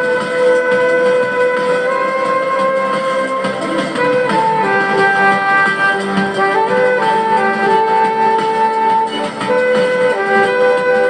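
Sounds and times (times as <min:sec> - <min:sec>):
backing track: 0:00.0 - 0:11.0
saxophone long note: 0:00.0 - 0:11.0.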